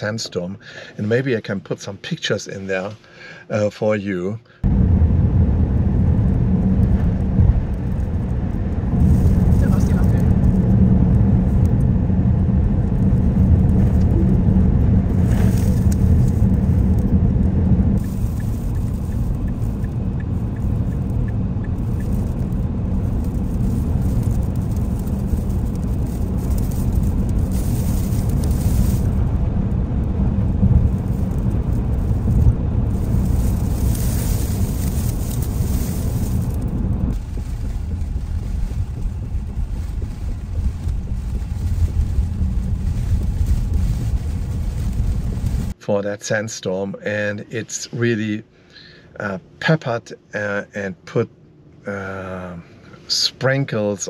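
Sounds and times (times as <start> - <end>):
road and wind noise in a car: 0.0 - 54.0.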